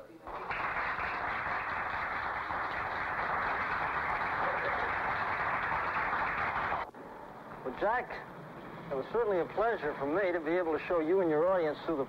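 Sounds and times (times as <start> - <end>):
audience applauding: 0.2 - 6.8.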